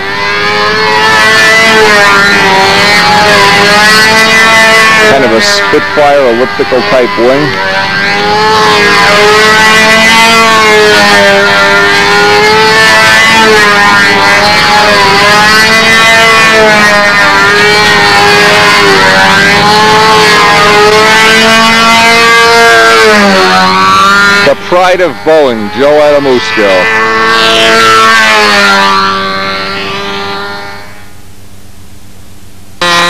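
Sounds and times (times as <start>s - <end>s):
model airplane engine buzzing: 0.0s - 31.5s, 32.8s - 33.0s.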